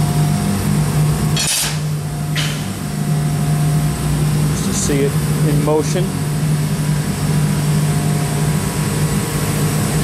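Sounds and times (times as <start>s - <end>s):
laser cutting machine humming: 0.0s - 10.0s.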